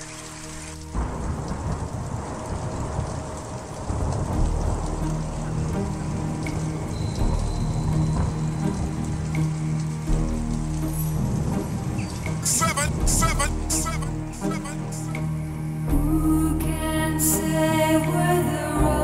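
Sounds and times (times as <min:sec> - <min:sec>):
rain: 0:00.0 - 0:19.0
low rumbling thunder: 0:00.8 - 0:14.4.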